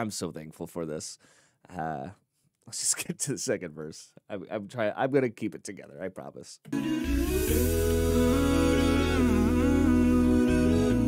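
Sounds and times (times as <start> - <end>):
vocal group humming harmony: 6.7 - 11.0
low bass voice line: 6.8 - 11.0.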